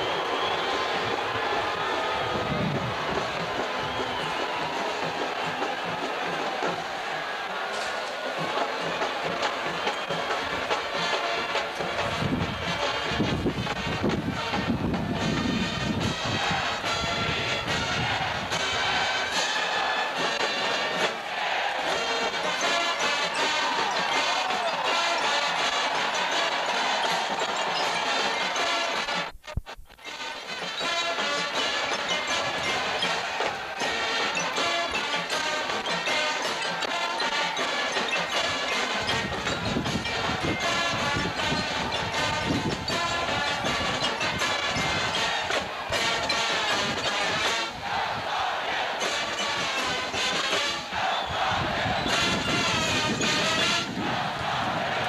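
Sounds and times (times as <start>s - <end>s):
marching band with brass and drums: 0.0s - 55.0s.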